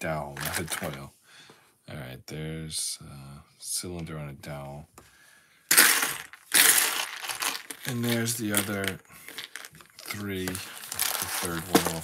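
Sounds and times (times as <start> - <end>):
plastic pieces rattling: 0.4 - 1.0, 5.7 - 12.0.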